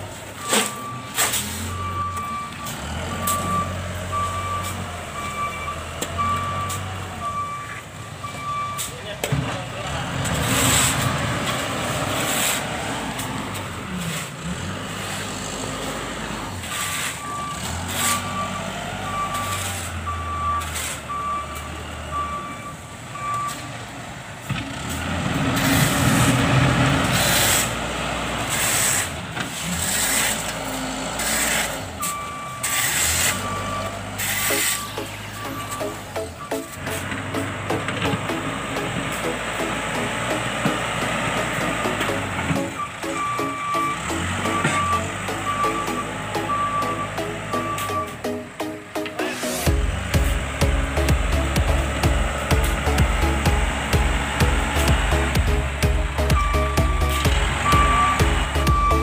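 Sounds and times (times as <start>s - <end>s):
diesel engine running: 0.0s - 59.0s
reversing alarm beeping: 0.4s - 9.0s, 16.8s - 23.7s, 32.0s - 48.7s, 52.5s - 59.0s.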